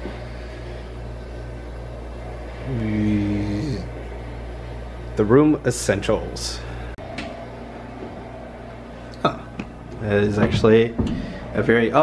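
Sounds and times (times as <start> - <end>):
ventilation fan hum: 0.0 - 12.0.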